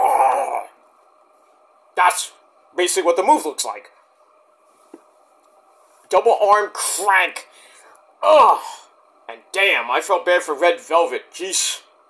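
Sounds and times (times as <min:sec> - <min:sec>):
man's growling roar: 0:00.0 - 0:00.8.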